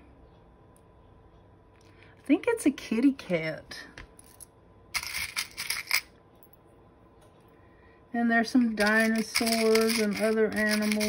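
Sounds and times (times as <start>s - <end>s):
small metal charms clinking: 8.8s - 11.0s.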